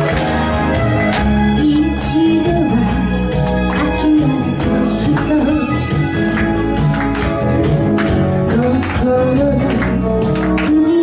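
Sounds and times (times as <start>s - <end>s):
backing music with steady beat: 0.0s - 11.0s
woman singing into microphone: 1.5s - 6.2s, 8.5s - 11.0s.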